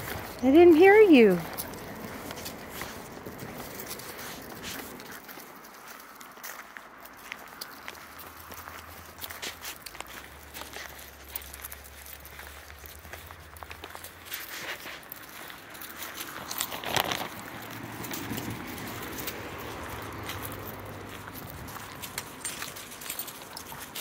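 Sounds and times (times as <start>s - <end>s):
footsteps on gravel: 0.0s - 24.0s.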